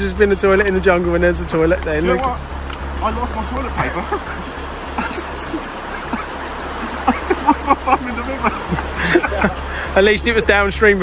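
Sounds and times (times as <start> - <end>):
stream running over stones: 0.0 - 11.0.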